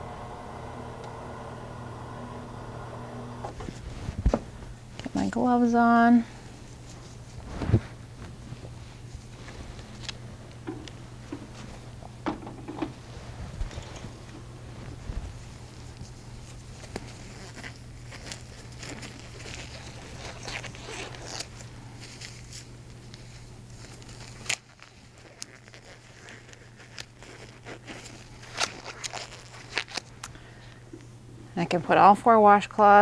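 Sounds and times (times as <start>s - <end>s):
low room hum: 0.0s - 33.0s
rubber gloves rustling and snapping: 6.6s - 12.0s, 13.5s - 30.8s.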